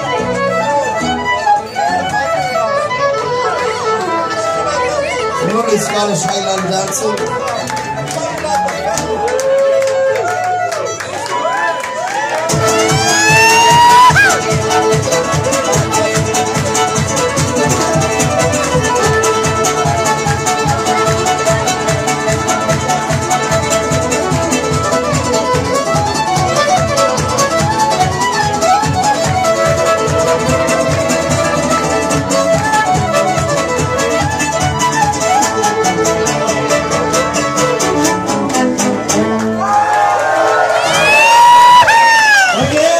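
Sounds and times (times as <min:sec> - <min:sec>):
live acoustic guitar music: 0:00.0 - 0:39.8
crowd whooping: 0:08.4 - 0:14.4, 0:39.5 - 0:42.9.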